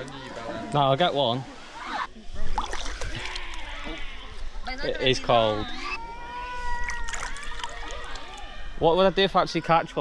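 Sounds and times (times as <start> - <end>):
water sloshing and splashing: 2.1 - 4.4, 6.9 - 8.4.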